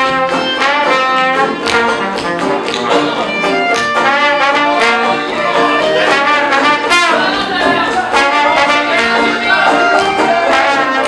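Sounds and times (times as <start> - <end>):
trombone: 0.0 - 3.3, 3.9 - 11.0
banjos: 0.0 - 11.0
clarinet: 0.0 - 11.0.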